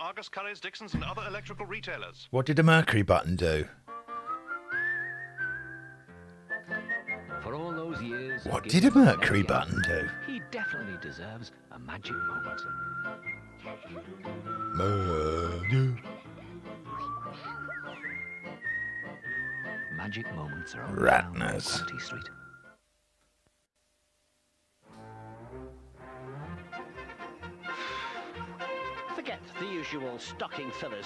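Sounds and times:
soft backing music: 1.0 - 22.8
person whistling a tune: 4.3 - 8.7, 9.7 - 11.1, 12.0 - 13.6, 14.4 - 16.1, 16.9 - 20.9.

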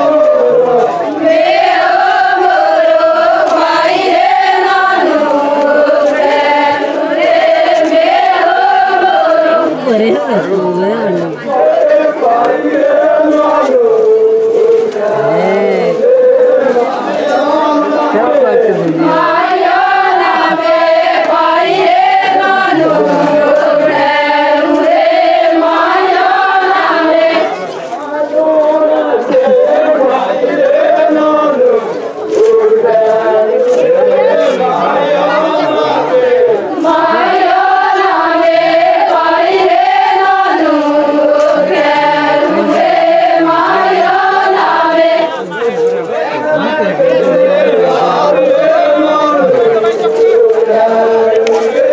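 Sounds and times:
women singing folk song: 0.0 - 18.0, 18.9 - 27.7, 35.5 - 45.4.

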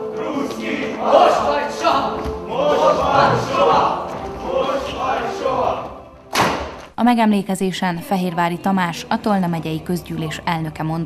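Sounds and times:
group shouting slogans: 0.0 - 6.1
loud thud ringing in a hall: 6.3 - 6.8.

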